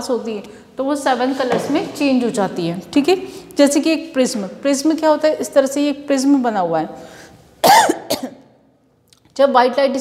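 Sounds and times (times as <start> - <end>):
woman coughing: 7.6 - 8.5.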